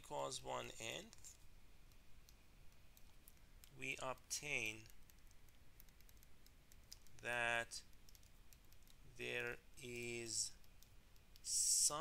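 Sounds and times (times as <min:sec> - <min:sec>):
stylus tapping on tablet screen: 0:04.6 - 0:09.0.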